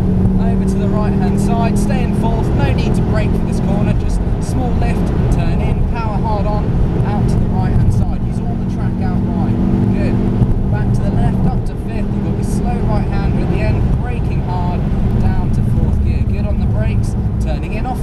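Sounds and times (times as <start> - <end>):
car engine at full throttle: 0.0 - 18.0.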